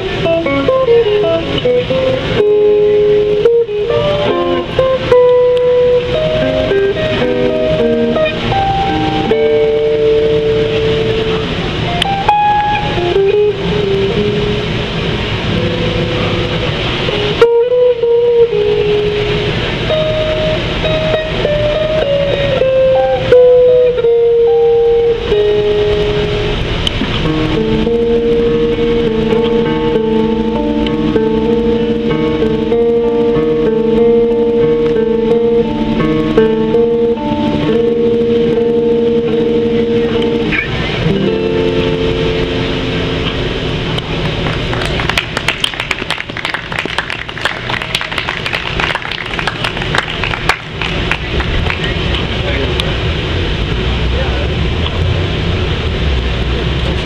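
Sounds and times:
electric guitar through amplifier: 0.0s - 57.0s.

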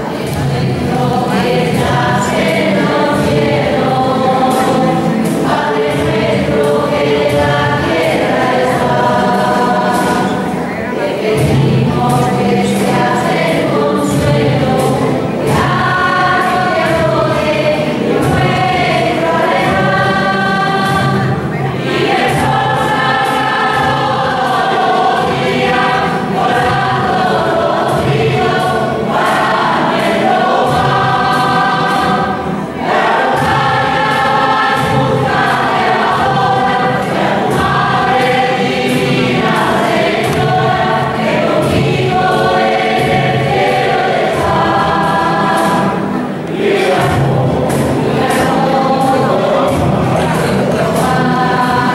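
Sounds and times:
choir singing a hymn: 0.0s - 51.9s.

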